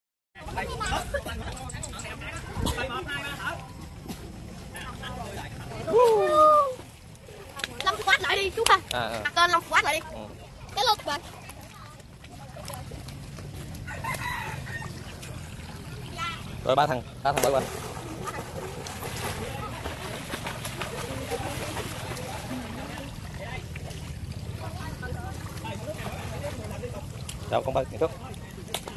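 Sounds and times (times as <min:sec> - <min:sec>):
water splashing and sloshing: 0:00.4 - 0:28.9
child's voice rising in pitch: 0:06.0 - 0:06.8
children's voices: 0:07.8 - 0:12.0
faint voices: 0:10.1 - 0:28.9.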